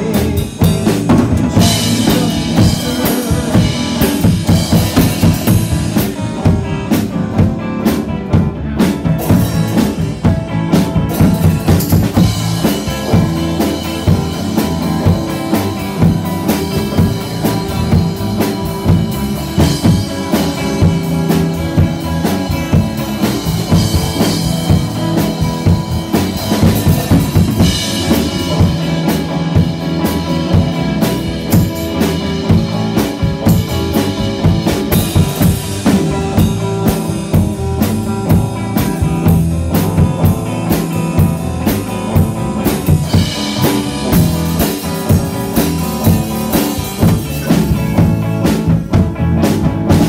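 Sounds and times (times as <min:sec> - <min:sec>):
bass drum and snare beat: 0:00.0 - 0:50.0
live rock band playing: 0:00.0 - 0:50.0.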